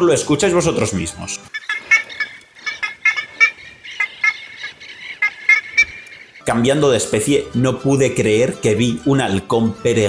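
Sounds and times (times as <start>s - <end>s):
ibis squawking calls: 1.5s - 7.2s.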